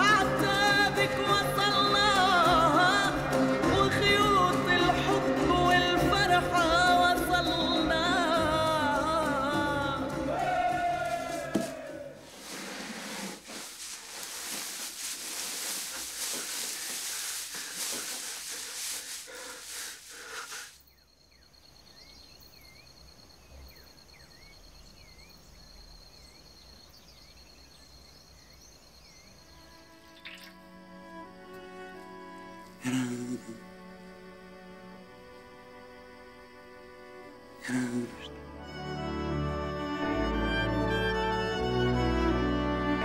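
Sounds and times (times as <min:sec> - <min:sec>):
person singing: 0:00.0 - 0:11.7, 0:37.6 - 0:38.4.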